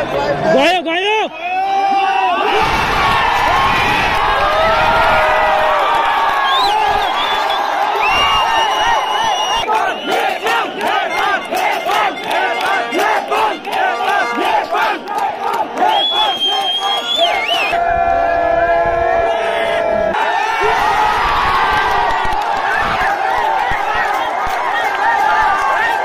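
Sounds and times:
crowd roar: 1.4 - 26.0
stadium crowd chanting: 2.4 - 26.0.

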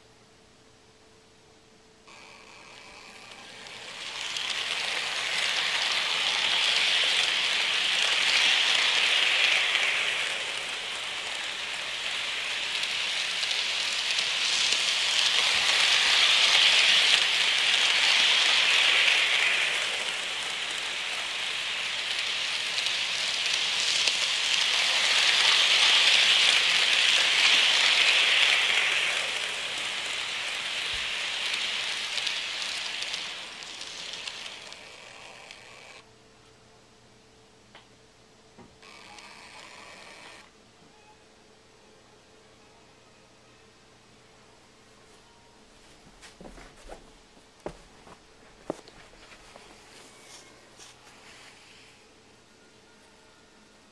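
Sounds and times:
model train rattling on metal track: 2.4 - 36.0.

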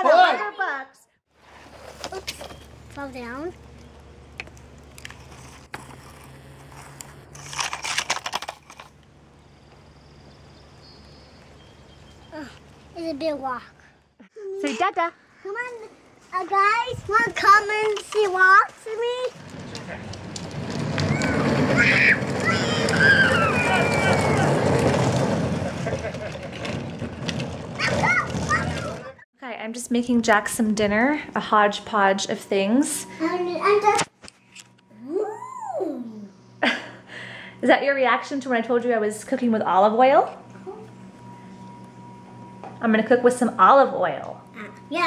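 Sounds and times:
dirt crunching and scraping: 1.3 - 10.2, 15.6 - 29.2
plastic wheels rumbling over asphalt: 1.6 - 11.6, 17.1 - 29.2
child calling out: 35.0 - 36.3.

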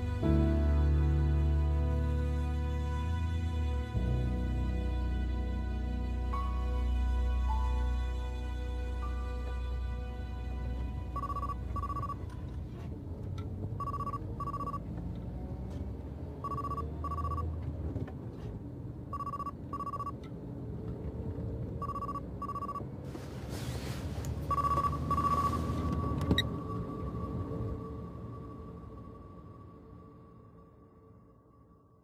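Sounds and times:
faint low music: 0.0 - 32.0
single steady tone: 13.8 - 14.8, 24.5 - 26.9.

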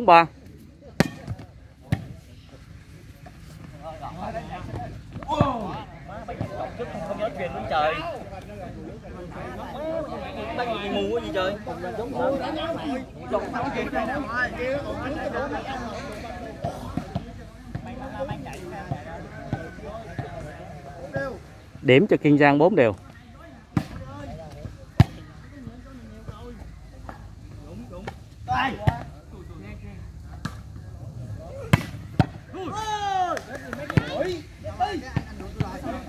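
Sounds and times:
crowd chatter: 0.0 - 36.0
spectators' voices: 0.0 - 36.0
loud shout: 32.5 - 35.0.

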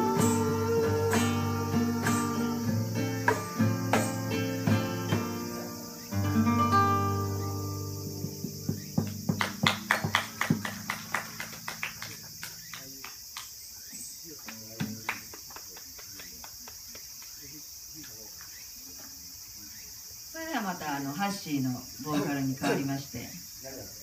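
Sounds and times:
steady high hiss: 0.0 - 24.0
audience clapping: 9.1 - 13.6, 14.4 - 17.5.

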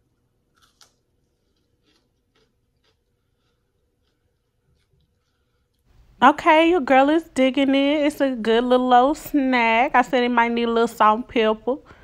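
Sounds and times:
crunchy chewing: 0.1 - 5.9.

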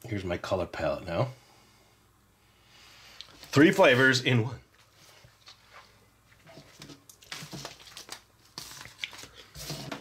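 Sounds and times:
plastic wrapper crinkling: 6.6 - 10.0.

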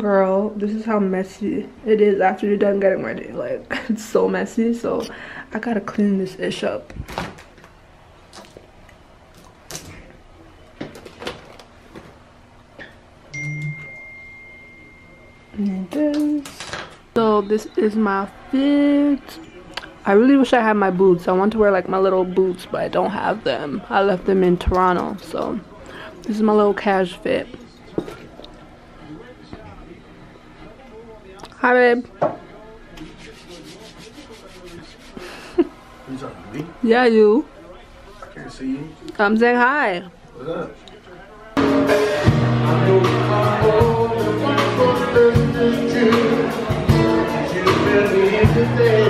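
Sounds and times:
clear high ringing tone: 13.3 - 15.9
soft rubbing and rustling: 33.0 - 35.2.

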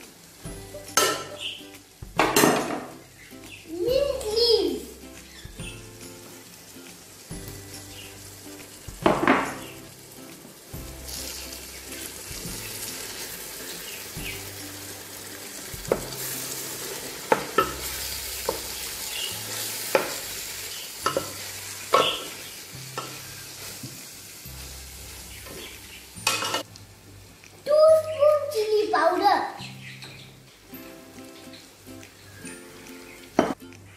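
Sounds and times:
food sizzling in metal pot: 0.0 - 33.8.

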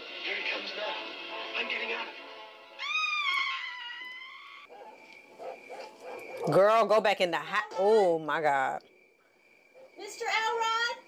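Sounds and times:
woman screaming: 2.8 - 4.7.

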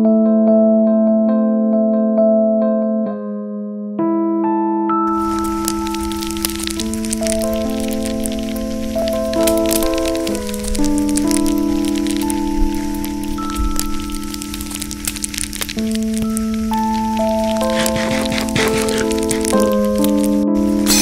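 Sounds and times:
sustained keyboard chords: 0.0 - 21.0
campfire crackling and popping: 5.1 - 21.0.

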